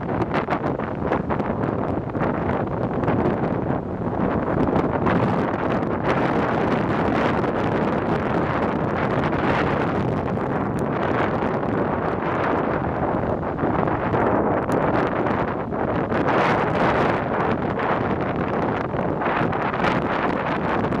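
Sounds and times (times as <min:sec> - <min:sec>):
strong wind buffeting microphone: 0:00.0 - 0:21.0.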